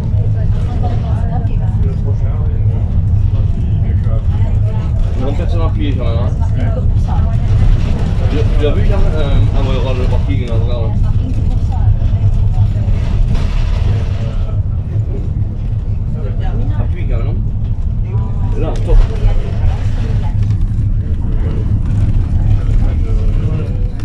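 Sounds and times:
minibus engine and road rumble: 0:00.0 - 0:24.0.

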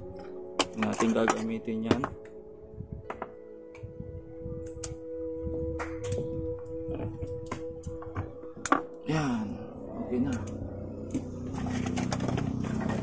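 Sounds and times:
steady sustained tones: 0:00.0 - 0:13.0.

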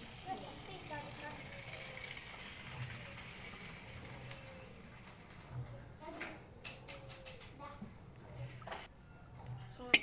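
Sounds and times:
water trickling into a mug: 0:00.0 - 0:04.7.

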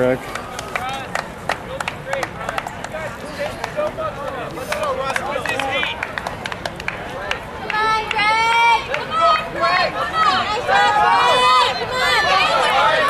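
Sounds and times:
spectators shouting encouragement: 0:07.1 - 0:13.0.

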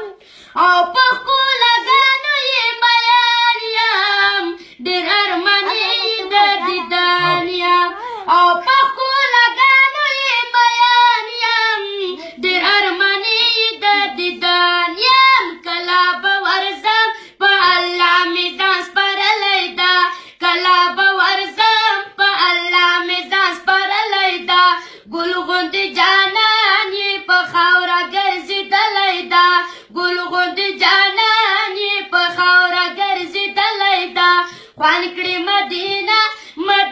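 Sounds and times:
boy singing unaccompanied: 0:00.0 - 0:36.9
breaths between phrases: 0:07.2 - 0:08.3.

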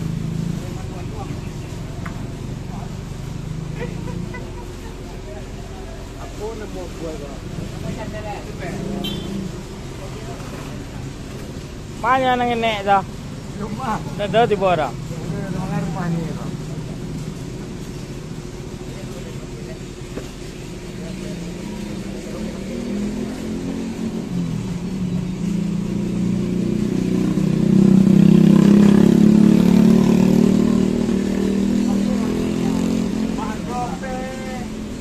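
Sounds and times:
vehicle engine running: 0:00.0 - 0:35.0.

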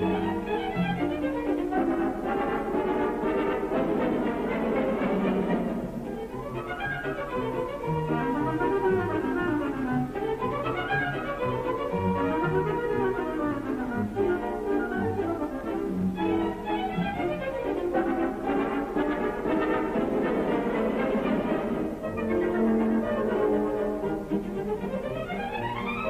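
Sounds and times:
orchestral music strings and brass: 0:00.0 - 0:26.0.

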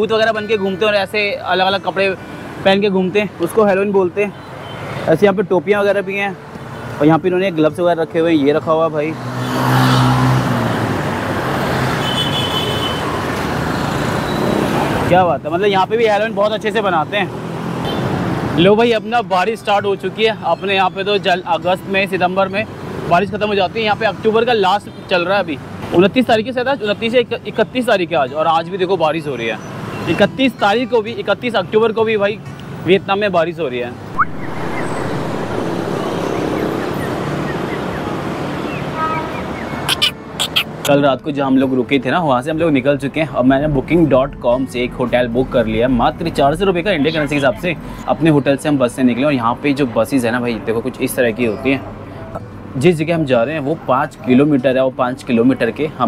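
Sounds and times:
street traffic noise: 0:00.0 - 0:56.0
motorbikes running along road: 0:08.9 - 0:12.2, 0:33.8 - 0:39.9
vehicle engine passing by: 0:09.1 - 0:12.0, 0:34.0 - 0:39.8.

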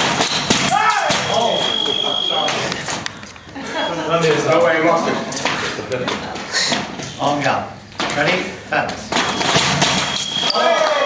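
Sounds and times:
fencing scoring beep: 0:01.2 - 0:02.8, 0:03.6 - 0:04.5, 0:09.2 - 0:11.0.

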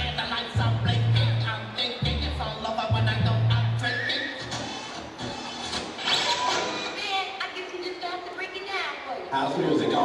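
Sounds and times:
street dance music: 0:00.0 - 0:10.0.

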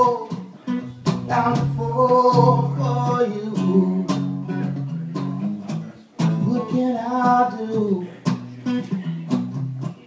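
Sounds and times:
acoustic guitar strumming: 0:00.0 - 0:10.0.

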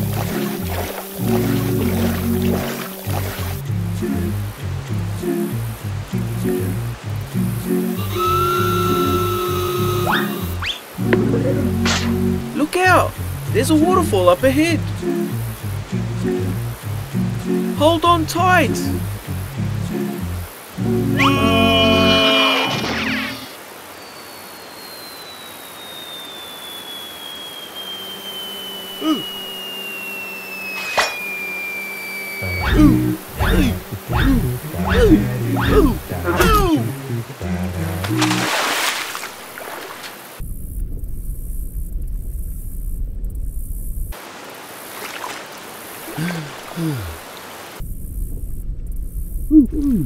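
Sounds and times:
water splashing hiss: 0:00.0 - 0:11.1, 0:11.7 - 0:40.4, 0:44.2 - 0:47.8
cartoon music: 0:07.4 - 0:15.2, 0:17.2 - 0:20.2, 0:20.8 - 0:22.3, 0:32.4 - 0:38.5
falling whistle: 0:07.9 - 0:10.9, 0:23.9 - 0:35.8
waterfall rushing: 0:20.5 - 0:23.8, 0:32.4 - 0:40.4, 0:44.2 - 0:47.8
deep muffled underwater rumble: 0:40.4 - 0:44.1, 0:47.8 - 0:50.0.

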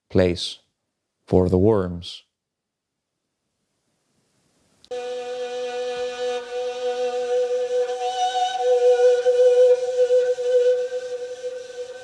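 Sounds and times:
bowed string instrument note: 0:04.9 - 0:12.0
lower drone note: 0:04.9 - 0:12.0.

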